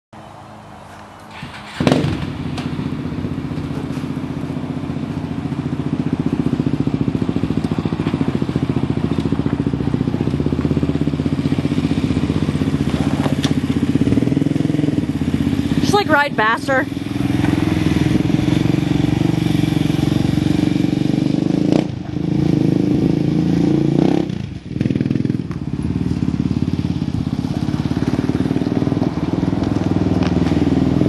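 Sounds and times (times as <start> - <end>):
atv engine running: 0.3 - 31.0.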